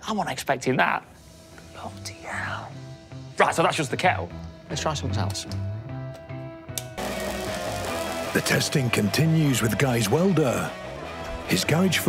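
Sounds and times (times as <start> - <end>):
arc welder hissing: 1.0 - 12.0
background music with bass line: 2.7 - 12.0.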